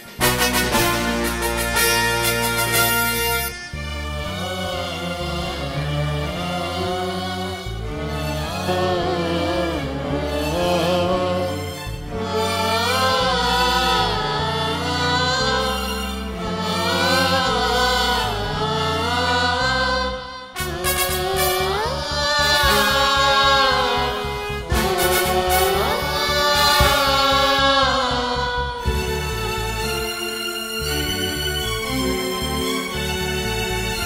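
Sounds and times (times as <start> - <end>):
live band with keyboard and drums: 0.0 - 3.7
live band accompaniment: 0.0 - 4.0, 20.6 - 27.8
low keyboard notes: 0.0 - 34.0
man and woman singing duet: 4.4 - 29.1
man singing into a microphone: 8.5 - 11.6.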